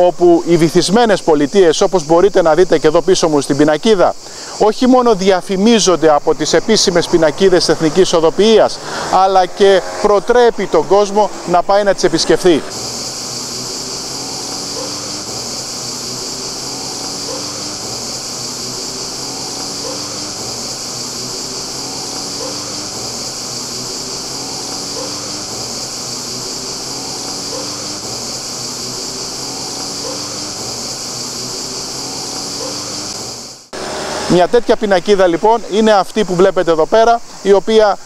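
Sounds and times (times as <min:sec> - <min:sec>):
cicadas chorus: 0:00.0 - 0:38.0.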